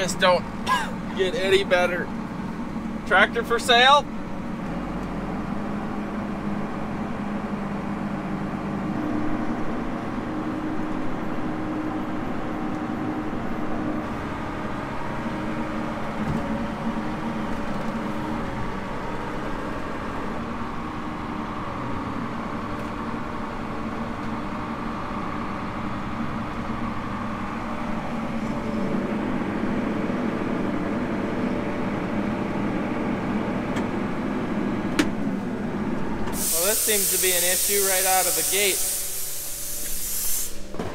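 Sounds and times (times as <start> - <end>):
tractor diesel engine running: 0.0 - 40.9.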